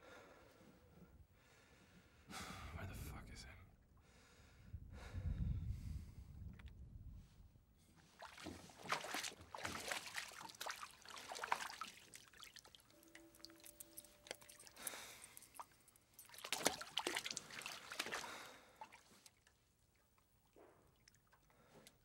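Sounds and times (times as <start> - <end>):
water sloshing and trickling: 8.0 - 22.0
small clicks and splashes: 8.2 - 22.0
faint held tone: 12.8 - 15.8.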